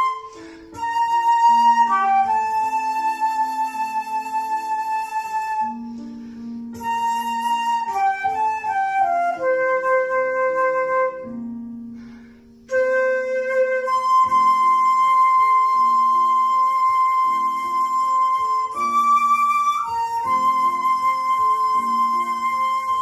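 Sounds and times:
flute playing slow melody: 0.0s - 23.0s
soft low accompaniment: 0.0s - 23.0s.

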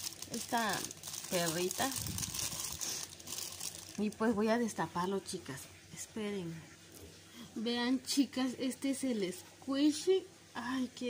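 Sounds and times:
plastic wrapping crinkling: 0.0s - 5.0s.

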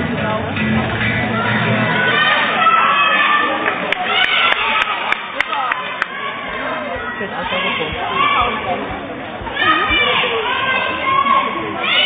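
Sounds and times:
children's voices and chatter: 0.0s - 12.0s
child shouting: 9.5s - 12.0s.

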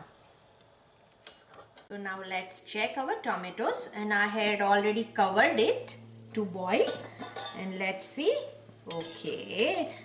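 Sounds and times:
speech: 1.9s - 10.0s.

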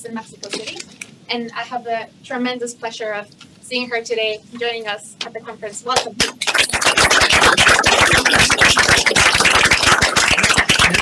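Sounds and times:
audience applauding: 6.4s - 11.0s.

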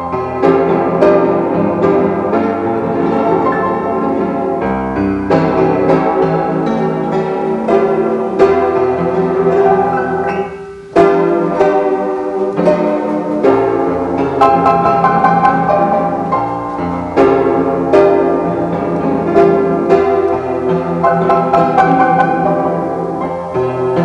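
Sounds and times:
jazz piano playing: 0.0s - 24.0s.

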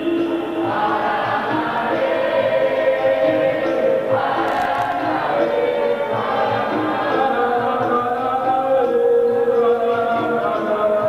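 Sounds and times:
group of voices singing: 0.0s - 11.0s
percussion: 0.0s - 11.0s.

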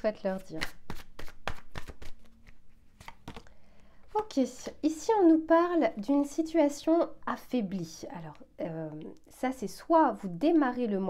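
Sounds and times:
cards snapping and slapping: 0.5s - 3.5s.

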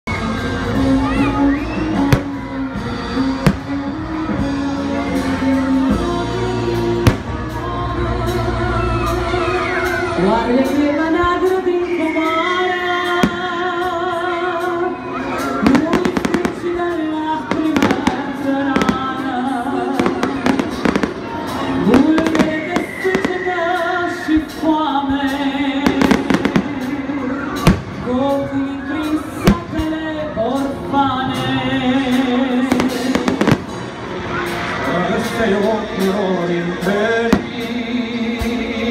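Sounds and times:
crowd noise: 0.0s - 38.9s
music: 0.0s - 38.9s
fireworks bangs: 2.0s - 2.7s, 3.4s - 4.0s, 15.6s - 23.6s, 32.7s - 33.9s.

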